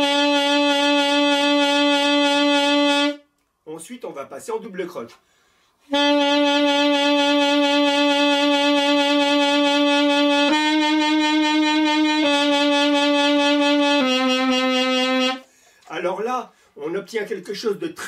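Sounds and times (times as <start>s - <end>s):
saxophone holding vibrato notes: 0.0s - 3.3s, 5.9s - 15.5s
person speaking: 3.6s - 5.2s, 15.8s - 18.0s.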